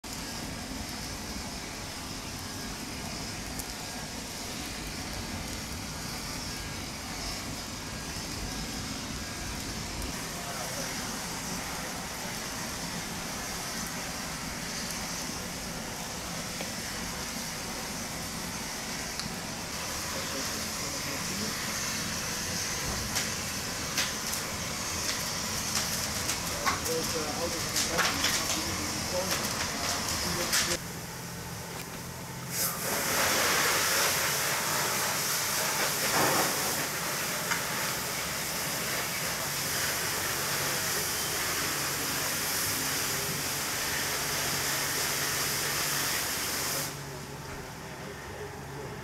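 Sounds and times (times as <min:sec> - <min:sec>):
fire crackling and popping: 0:00.0 - 0:47.3
flames rushing: 0:00.1 - 0:47.7.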